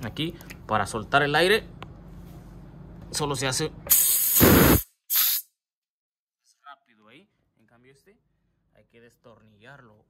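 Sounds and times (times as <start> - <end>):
compressed air hissing from tank: 3.9 - 5.5.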